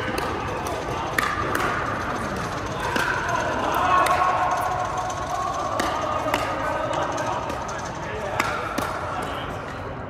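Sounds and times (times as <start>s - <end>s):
ball bouncing on court: 0.0s - 9.5s.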